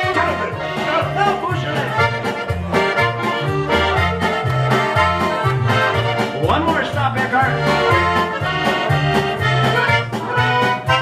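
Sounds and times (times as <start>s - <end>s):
piano accordion music: 0.0s - 11.0s.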